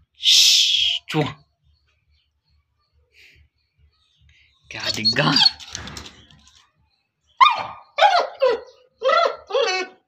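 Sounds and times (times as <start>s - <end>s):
dog yelping barks: 4.9s - 5.7s, 7.4s - 10.0s.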